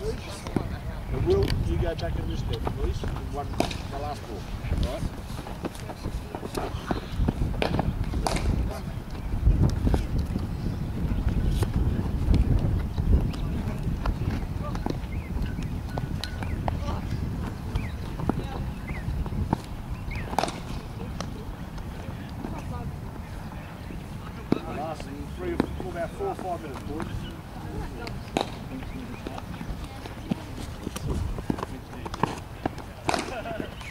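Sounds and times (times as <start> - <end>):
faint distant voices: 0.0 - 33.9
cricket ball knocking off bat: 20.3 - 21.3, 28.0 - 28.6, 31.0 - 33.8.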